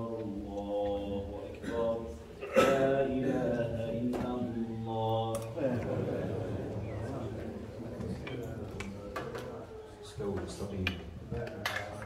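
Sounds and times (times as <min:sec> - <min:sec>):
man chanting over loudspeaker: 0:00.0 - 0:06.4.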